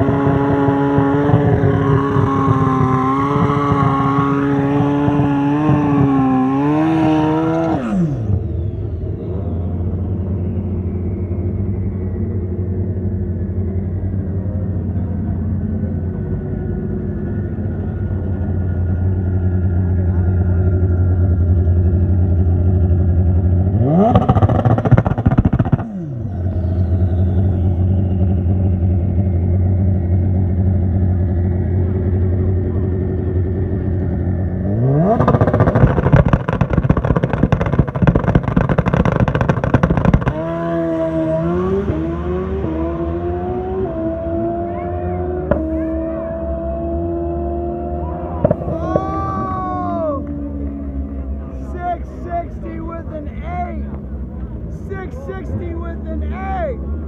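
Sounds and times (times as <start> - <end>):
motorcycle engine revving: 0.0 - 51.6
engine idling: 8.0 - 40.5.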